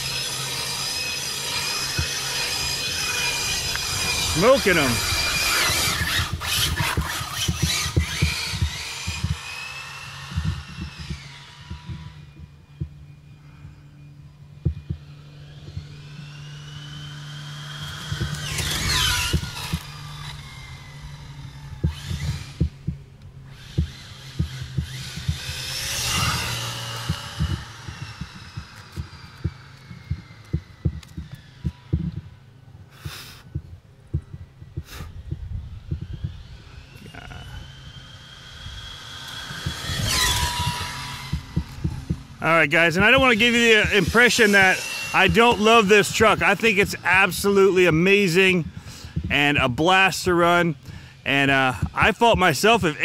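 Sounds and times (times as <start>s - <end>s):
electric motor whining: 0.0s - 53.0s
steady low hum: 0.0s - 53.0s.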